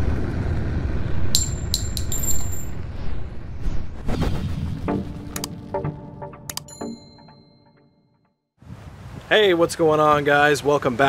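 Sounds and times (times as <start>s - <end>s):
sharp metallic clinks: 1.4s - 2.8s.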